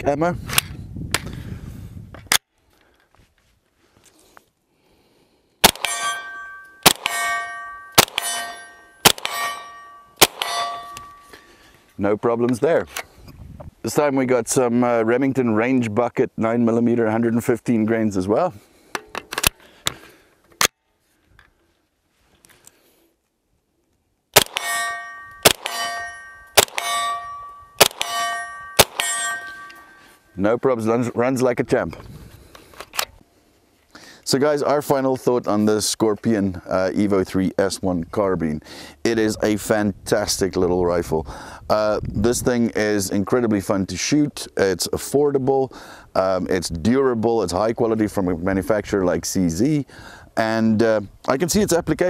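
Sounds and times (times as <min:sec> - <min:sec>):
gunshots: 0:05.6 - 0:10.9, 0:24.4 - 0:29.7
steel target ringing: 0:05.6 - 0:11.6, 0:24.4 - 0:30.2.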